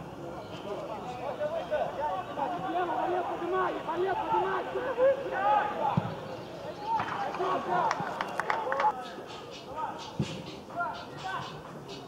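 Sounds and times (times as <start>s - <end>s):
men shouting and calling: 1.0s - 10.1s.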